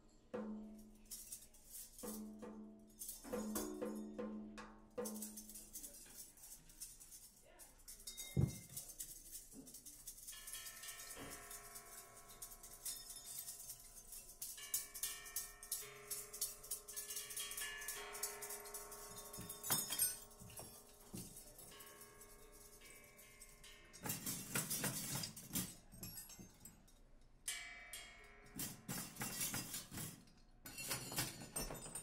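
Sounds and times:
ringing percussion tones: 10.1s - 26.7s.

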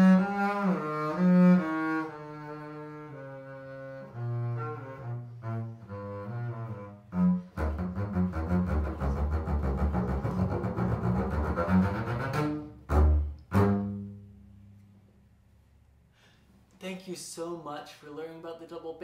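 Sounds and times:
bowed double bass: 0.0s - 15.2s.

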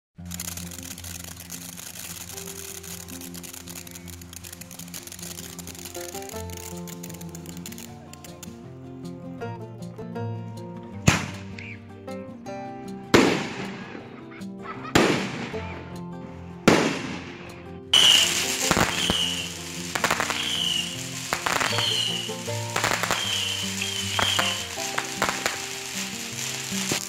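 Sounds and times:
background music: 0.2s - 27.0s
fountain firework hissing and crackling: 0.3s - 8.2s, 18.0s - 27.0s
firework bangs with crackle: 11.1s - 11.5s, 13.2s - 13.7s, 15.0s - 15.6s, 16.7s - 17.3s, 18.0s - 27.0s.

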